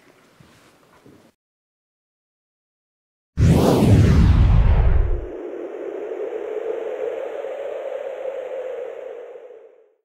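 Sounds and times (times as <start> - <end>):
low hum: 3.4 - 10.0.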